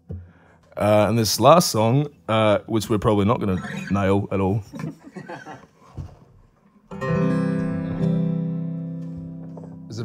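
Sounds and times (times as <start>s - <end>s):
guitar chord strummed: 6.9s - 10.0s.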